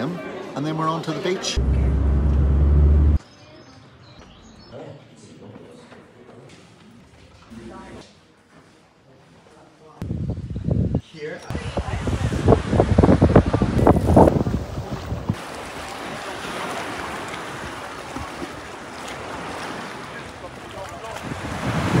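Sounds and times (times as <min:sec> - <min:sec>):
wind buffeting microphone: 0:10.0 - 0:15.4, 0:21.1 - 0:22.0
sea water washing in shallows: 0:11.8 - 0:22.0.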